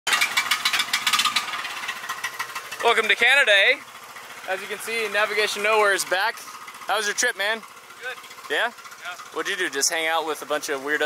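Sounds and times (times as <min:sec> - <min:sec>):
portable generator engine running: 0:00.1 - 0:11.0.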